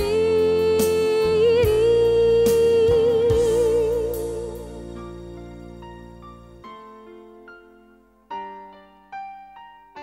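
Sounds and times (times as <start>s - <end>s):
pop ballad with vibrato singing: 0.0s - 6.2s.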